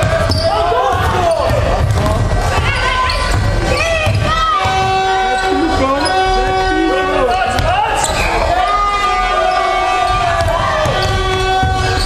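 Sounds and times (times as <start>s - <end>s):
basketball dribbling on wooden floor: 0.0s - 5.2s.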